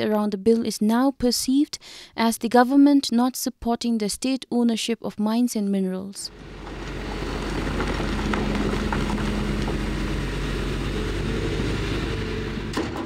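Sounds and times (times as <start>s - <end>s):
heavy diesel machinery hum: 6.3s - 13.0s.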